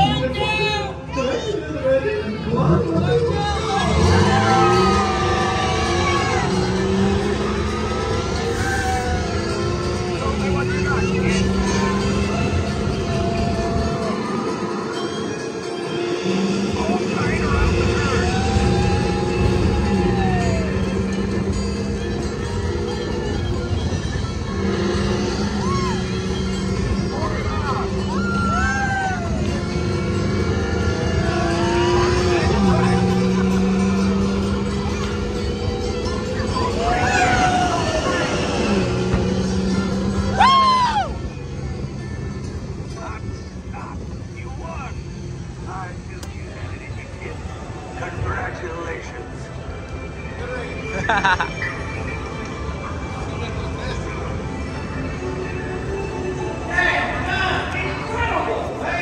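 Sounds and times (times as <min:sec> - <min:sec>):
voices calling out: 0:00.0 - 0:42.1
ride car rumbling along track: 0:00.0 - 0:59.0
ride music: 0:00.0 - 0:59.0.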